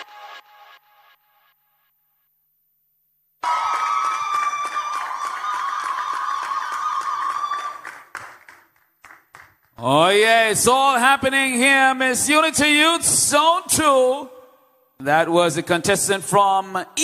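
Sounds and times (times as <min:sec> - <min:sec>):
voices cheering: 0:03.4 - 0:08.0
applause: 0:03.4 - 0:09.8.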